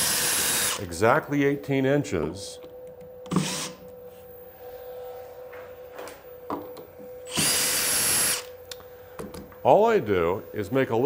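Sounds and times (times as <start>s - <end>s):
cordless drill whining: 0.0s - 0.8s, 3.3s - 3.8s, 7.3s - 8.6s
faint hum: 0.1s - 11.0s.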